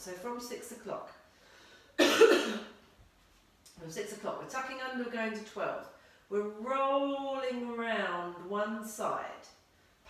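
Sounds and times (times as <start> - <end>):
woman coughing: 2.0 - 2.8.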